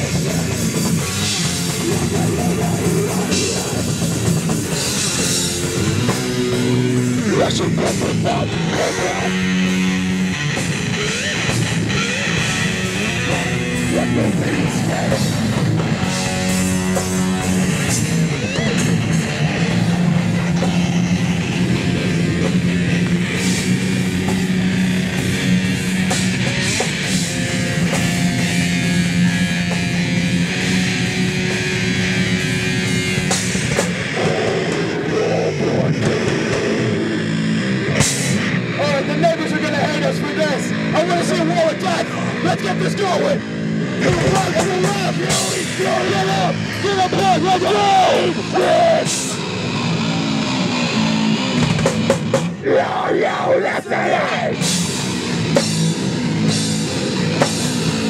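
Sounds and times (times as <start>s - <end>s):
metal band playing: 0.0s - 58.0s
shouted vocals: 44.0s - 49.3s, 52.6s - 54.6s.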